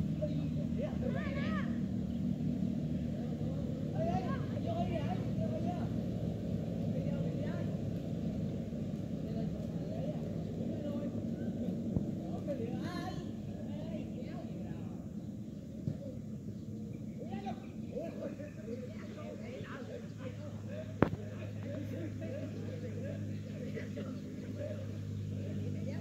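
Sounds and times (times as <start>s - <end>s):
distant players calling out: 0.0s - 2.2s, 3.0s - 7.9s, 9.0s - 26.0s
steady low rumble: 0.0s - 26.0s.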